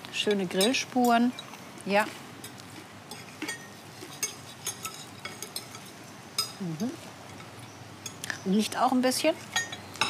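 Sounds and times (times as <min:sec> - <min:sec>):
knife and fork clinking on plate: 0:03.1 - 0:06.6, 0:09.5 - 0:09.9.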